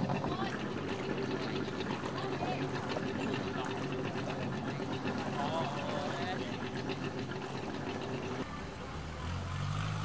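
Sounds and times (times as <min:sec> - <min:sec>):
deep boat engine hum: 0:00.0 - 0:10.0
higher boat engine hum: 0:00.0 - 0:10.0.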